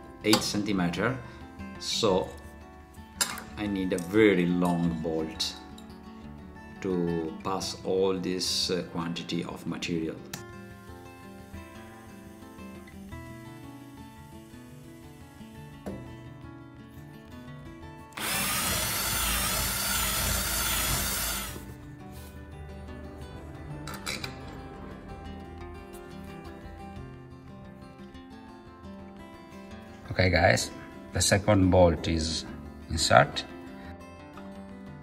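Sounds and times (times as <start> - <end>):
guitar music: 0.0 - 35.0
power drill boring wood: 18.1 - 21.7.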